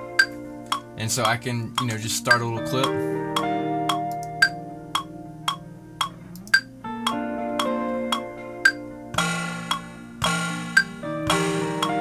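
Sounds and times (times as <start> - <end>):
electric guitar chords: 0.0 - 12.0
metronome clicking: 0.1 - 12.0.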